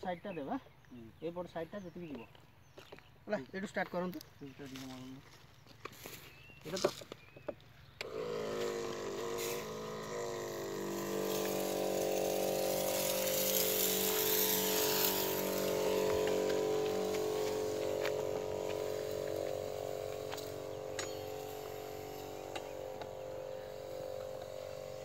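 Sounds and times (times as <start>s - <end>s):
nozzle spray hiss: 8.0s - 25.0s
sprayer pump humming: 8.0s - 25.0s.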